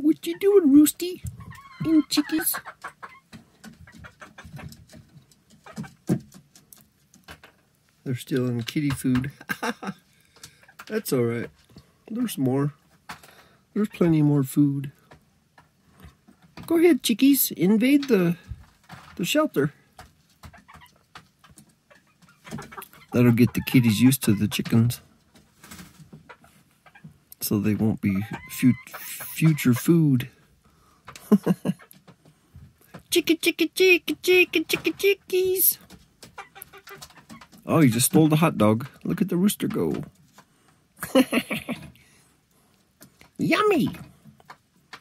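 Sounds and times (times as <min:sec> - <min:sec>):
chickens pecking taps and clicks: 0:00.1 - 0:30.3, 0:31.0 - 0:42.1, 0:42.8 - 0:45.0
chicken low calls: 0:01.2 - 0:04.6.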